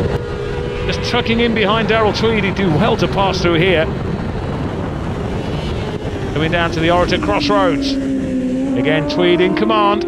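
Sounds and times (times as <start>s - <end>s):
motorcycle engine running hard: 0.0s - 10.0s
wind rush on microphone: 0.0s - 10.0s.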